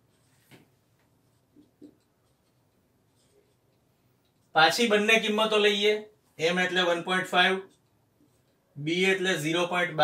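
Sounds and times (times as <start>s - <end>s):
marker pen writing on whiteboard: 0.0s - 10.0s.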